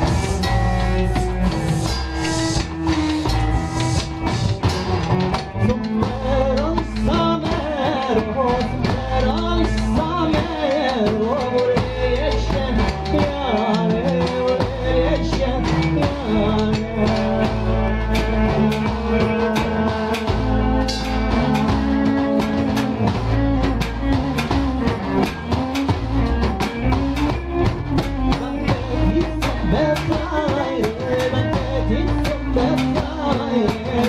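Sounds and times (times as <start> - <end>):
accordion: 0.0 - 34.0
double bass: 0.0 - 34.0
drums: 0.0 - 34.0
man singing: 5.6 - 23.2, 28.0 - 34.0.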